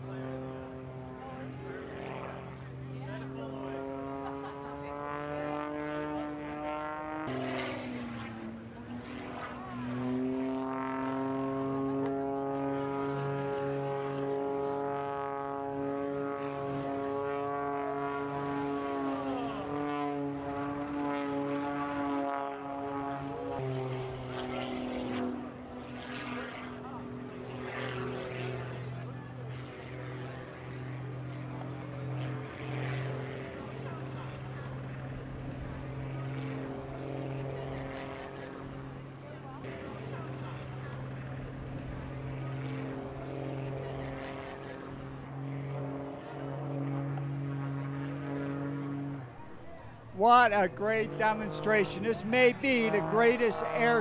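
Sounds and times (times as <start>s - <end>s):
propeller airplane engine: 0.0s - 54.0s.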